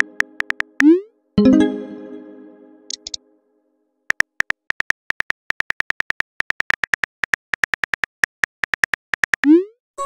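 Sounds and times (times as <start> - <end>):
keyboard tap clicks: 0.0 - 0.9.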